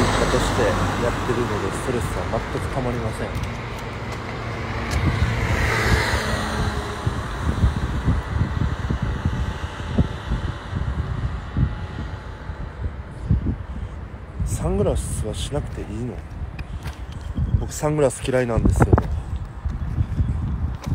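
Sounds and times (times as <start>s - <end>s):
car passing: 0.0s - 12.4s
low rumble on microphone: 0.0s - 20.9s
steady traffic noise: 0.0s - 20.9s.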